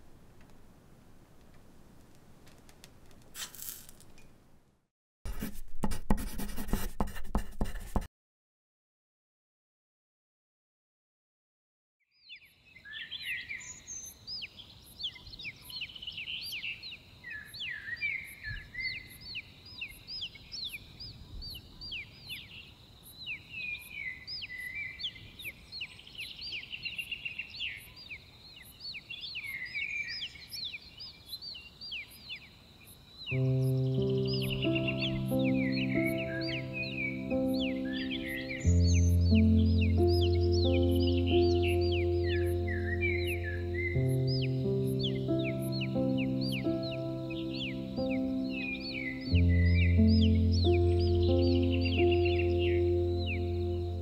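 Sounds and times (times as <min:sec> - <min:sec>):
small birds chirping: 0:12.2 - 0:54.0
soft sustained music chords: 0:33.4 - 0:54.0.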